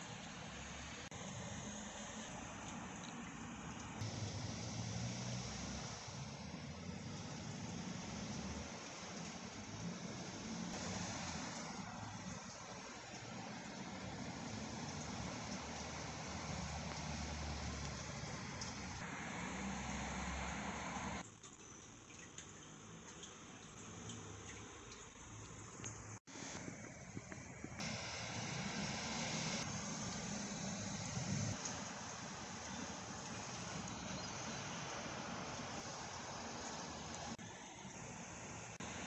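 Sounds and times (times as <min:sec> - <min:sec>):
steady background hiss: 0:00.0 - 0:21.2, 0:26.0 - 0:39.0.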